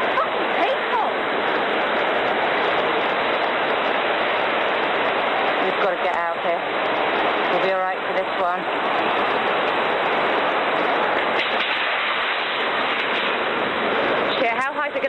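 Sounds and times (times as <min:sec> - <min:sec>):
floodwater rushing: 0:00.0 - 0:15.0.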